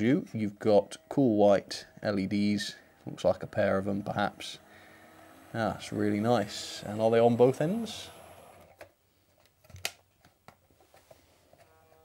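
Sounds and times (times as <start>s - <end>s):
faint steady hum: 0.0s - 9.5s.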